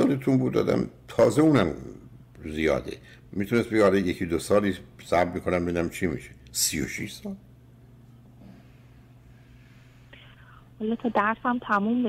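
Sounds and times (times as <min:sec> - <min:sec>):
faint breath over phone: 0:08.4 - 0:10.7
caller speaking: 0:10.8 - 0:12.0.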